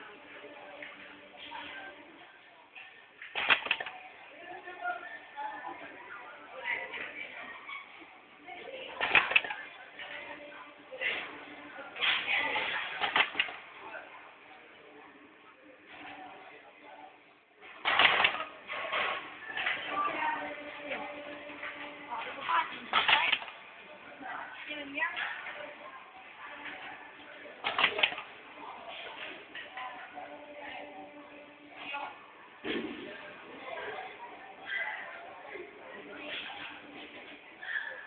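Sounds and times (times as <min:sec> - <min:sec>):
faint voices: 0:00.0 - 0:38.0
machine clattering: 0:03.3 - 0:03.9, 0:09.0 - 0:09.6, 0:12.0 - 0:13.6, 0:17.8 - 0:19.8, 0:22.8 - 0:23.6, 0:27.6 - 0:28.3
wire stripping machine clacks: 0:03.3 - 0:03.9, 0:17.8 - 0:18.5, 0:27.6 - 0:28.2.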